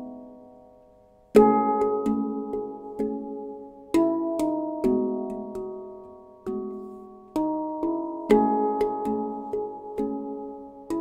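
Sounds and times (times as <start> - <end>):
handpan melody: 0.0 - 11.0.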